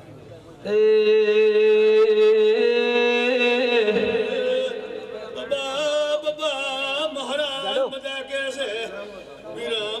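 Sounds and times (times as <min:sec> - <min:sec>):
man singing long held note: 0:00.6 - 0:07.2.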